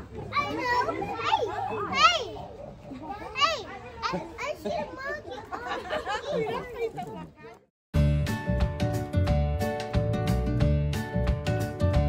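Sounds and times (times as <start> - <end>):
people chattering: 0.0 - 7.7.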